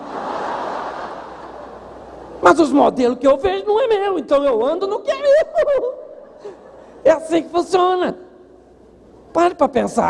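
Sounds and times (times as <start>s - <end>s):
audience laughing: 0.0s - 2.4s.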